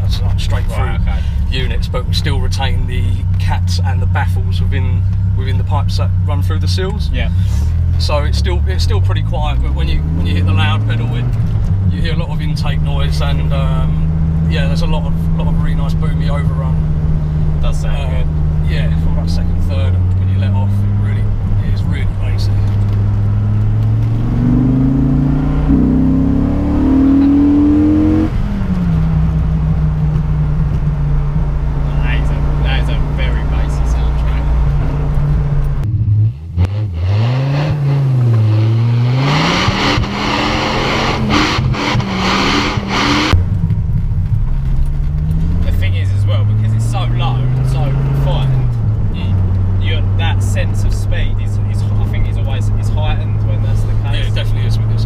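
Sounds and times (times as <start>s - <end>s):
car engine accelerating: 0.0s - 55.0s.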